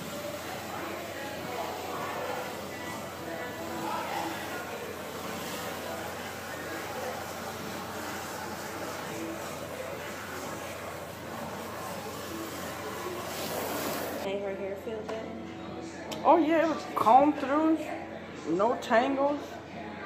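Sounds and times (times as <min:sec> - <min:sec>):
water sprayer hissing: 0:00.0 - 0:14.3.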